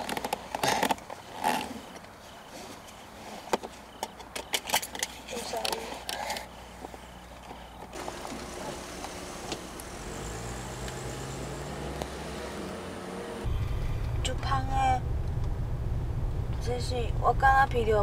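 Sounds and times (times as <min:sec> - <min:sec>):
car pulling away and passing: 0:08.0 - 0:16.7
car rumble from inside cabin: 0:08.5 - 0:18.0.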